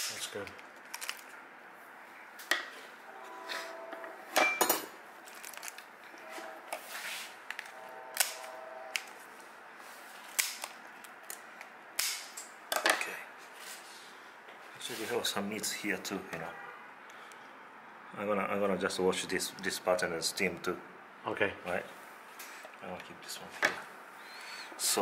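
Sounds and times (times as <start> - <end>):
shears snipping hard shell: 12.0 - 12.5.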